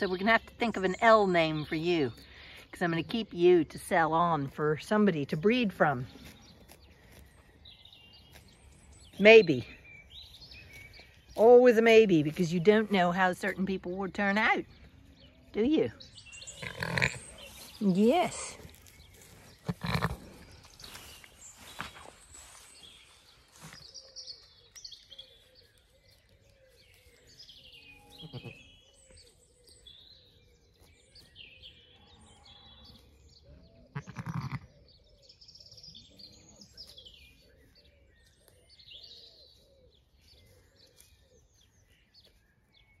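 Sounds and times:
small birds chirping: 0.0s - 43.0s
sheep bleating: 33.9s - 34.7s.

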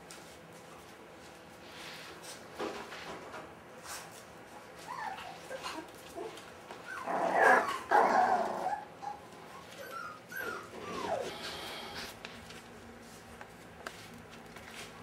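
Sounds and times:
puppies whining and yelping: 4.8s - 11.9s.

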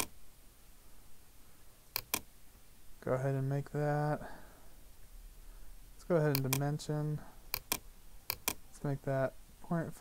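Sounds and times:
faint room noise: 0.0s - 10.0s
computer mouse clicks: 1.9s - 2.3s, 6.3s - 6.7s, 7.5s - 8.6s.

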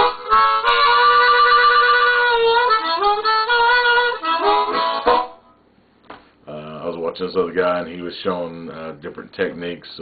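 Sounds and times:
harmonica playing: 0.0s - 5.6s.

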